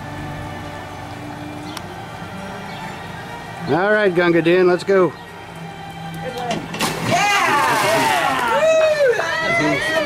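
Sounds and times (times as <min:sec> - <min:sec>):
splash into swimming pool: 0:06.8 - 0:09.0
people shouting excitedly: 0:07.1 - 0:10.0.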